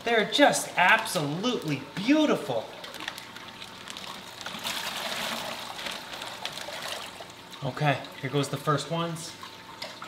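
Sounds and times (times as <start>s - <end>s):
water trickling and splashing: 2.5s - 10.0s.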